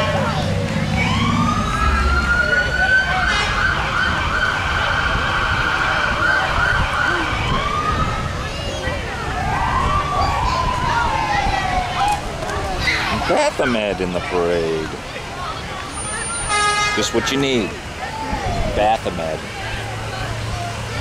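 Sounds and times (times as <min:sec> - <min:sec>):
siren wailing: 0:00.7 - 0:08.4, 0:09.2 - 0:12.4.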